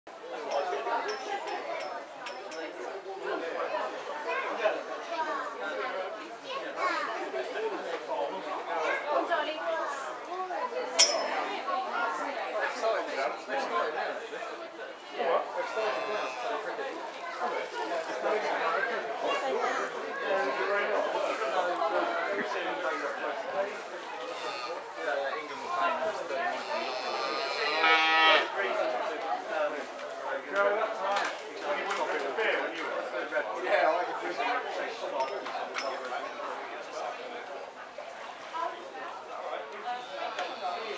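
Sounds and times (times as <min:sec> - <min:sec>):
people chattering: 0:00.1 - 0:40.9
cow mooing: 0:26.8 - 0:28.5.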